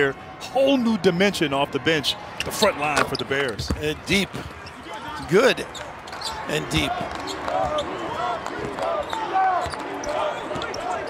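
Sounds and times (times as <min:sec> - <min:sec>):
sneaker squeaks: 0:02.4 - 0:08.0, 0:09.0 - 0:11.0.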